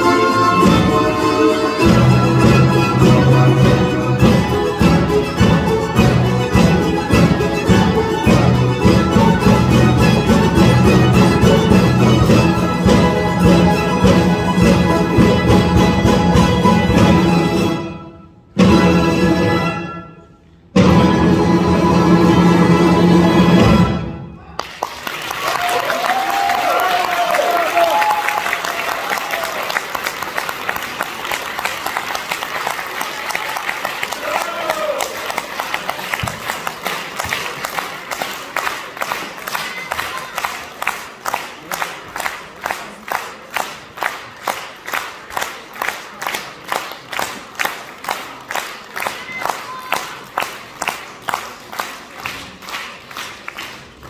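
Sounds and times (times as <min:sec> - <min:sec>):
rhythmic clapping in unison: 0:00.0 - 0:17.1, 0:24.6 - 0:54.0
audience applauding: 0:24.6 - 0:54.0
shouted cheers: 0:25.2 - 0:29.9, 0:33.0 - 0:35.5.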